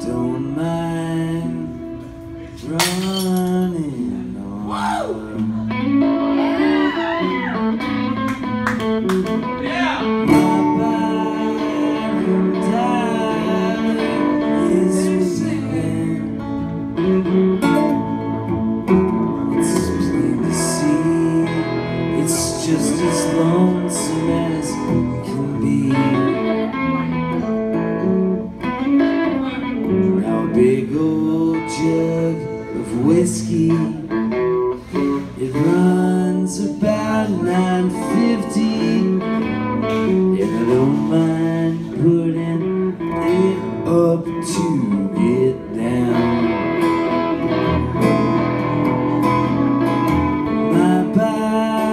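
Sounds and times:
acoustic guitar strumming: 0:00.0 - 0:51.9
electric guitar lead notes: 0:00.0 - 0:51.9.

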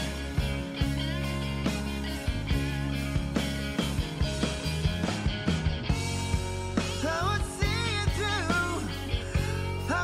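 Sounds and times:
rock band accompaniment: 0:00.0 - 0:10.0
person singing: 0:06.8 - 0:10.0.

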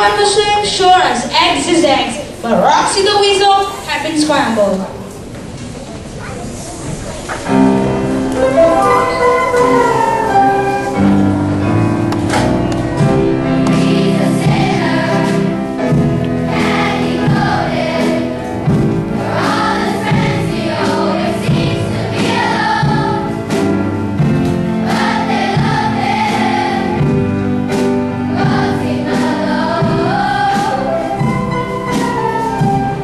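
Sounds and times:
instrumental accompaniment: 0:07.4 - 0:33.0
children singing: 0:07.6 - 0:11.4, 0:13.0 - 0:23.8, 0:24.6 - 0:33.0.

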